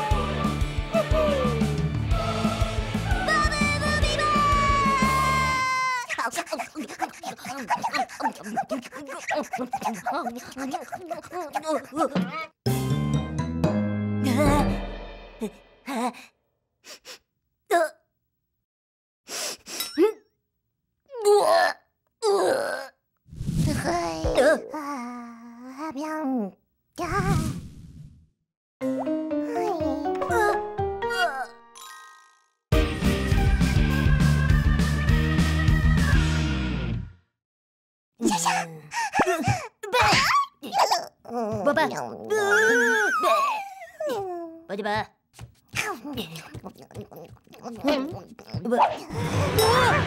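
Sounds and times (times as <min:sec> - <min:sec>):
cartoon character grunts and gasps: 0:05.7 - 0:12.6, 0:17.7 - 0:18.0, 0:29.4 - 0:32.3, 0:38.2 - 0:44.7, 0:45.7 - 0:50.0.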